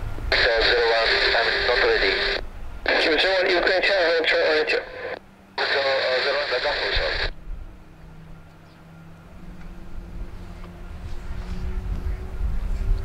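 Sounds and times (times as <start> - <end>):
jet engine rumble and hum: 0.0 - 13.0
radio chatter through scanner: 0.3 - 7.3.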